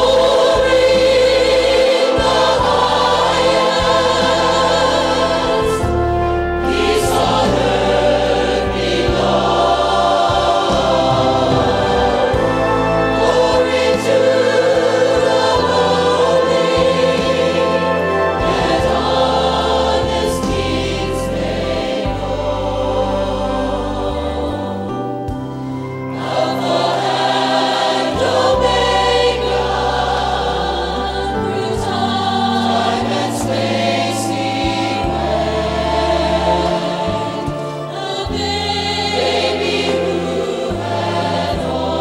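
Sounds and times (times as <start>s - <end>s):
church choir singing: 0.0s - 42.0s
instrumental accompaniment: 0.0s - 42.0s.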